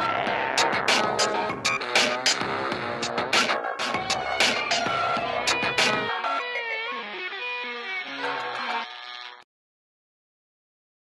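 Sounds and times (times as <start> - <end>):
background music with bending held notes: 0.0 - 9.4.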